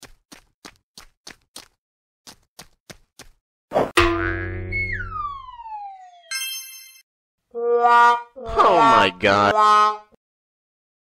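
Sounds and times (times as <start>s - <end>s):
cartoon boing: 4.0s - 5.8s
whistle gliding down in pitch: 4.7s - 6.3s.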